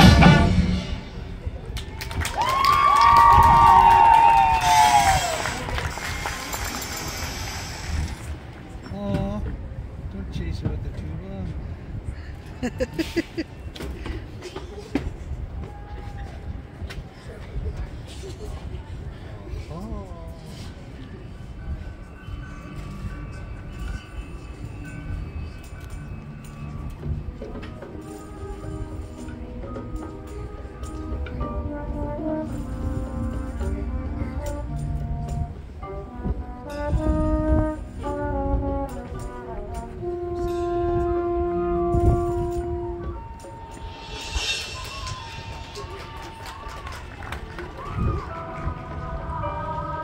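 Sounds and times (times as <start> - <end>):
marching band sustained chords: 0.0 - 1.8, 22.1 - 50.0.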